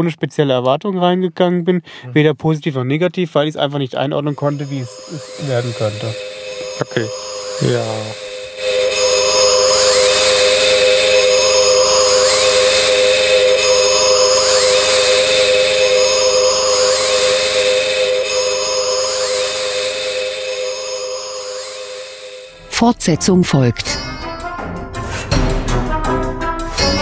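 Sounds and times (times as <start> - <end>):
people talking: 0.0 - 8.2, 22.7 - 23.9
loud mechanical whirring: 4.4 - 22.8.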